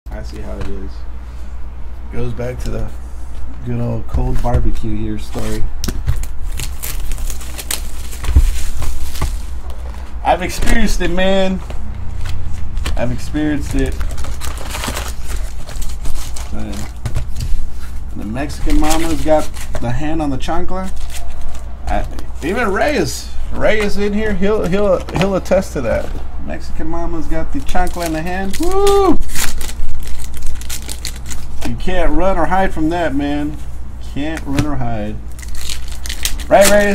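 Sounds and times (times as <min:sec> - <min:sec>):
steady low hum: 0:00.1 - 0:36.9
cards being handled: 0:05.3 - 0:10.9, 0:11.5 - 0:20.0, 0:27.6 - 0:31.8, 0:35.4 - 0:36.9
wrapping crinkling and ripping: 0:06.2 - 0:10.1, 0:12.1 - 0:18.0, 0:18.6 - 0:19.9, 0:27.6 - 0:31.7, 0:35.3 - 0:36.9
man talking: 0:10.2 - 0:11.7, 0:13.0 - 0:14.0, 0:18.2 - 0:20.9.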